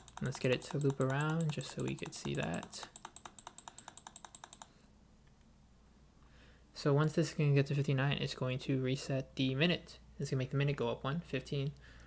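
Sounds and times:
rapid computer mouse clicks: 0.0s - 4.9s.

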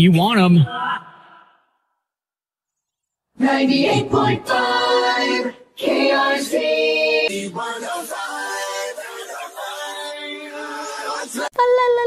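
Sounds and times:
radio station jingle: 0.0s - 1.3s.

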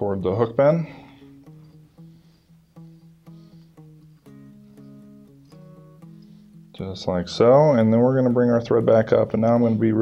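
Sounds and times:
guitar picking single notes: 0.0s - 10.0s.

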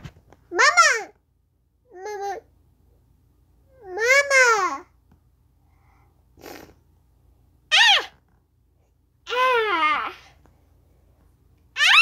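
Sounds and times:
child yelping: 7.7s - 8.2s, 9.3s - 10.2s, 11.8s - 12.0s.

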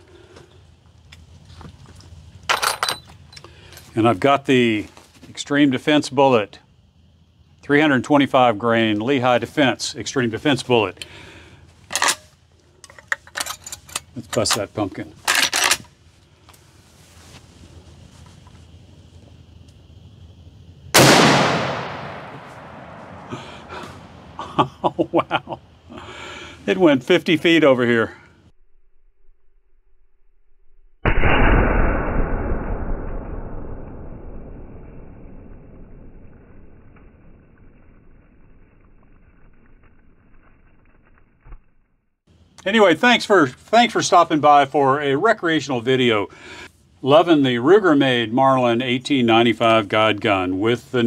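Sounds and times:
slowed rifle shot deep boom: 21.0s - 24.4s, 31.0s - 38.6s.

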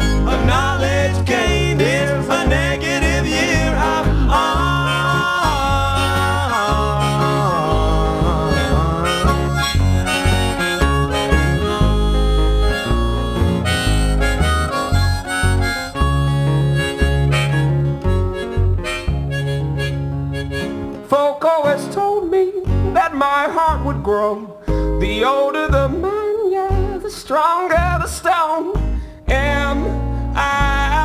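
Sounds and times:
harmonica: 0.0s - 21.0s
strummed acoustic guitar: 0.0s - 31.0s
upright bass: 0.0s - 31.0s.

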